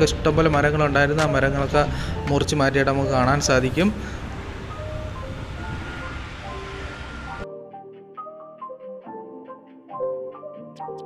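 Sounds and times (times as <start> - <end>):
road noise: 0.0 - 7.4
light background music: 0.0 - 11.0.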